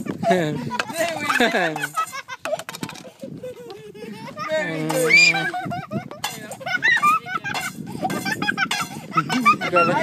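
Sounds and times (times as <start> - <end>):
voices: 3.3 - 10.0.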